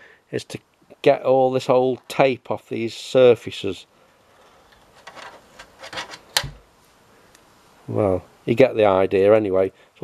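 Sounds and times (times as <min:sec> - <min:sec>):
fingers scraping tape off metal: 0:04.7 - 0:06.6.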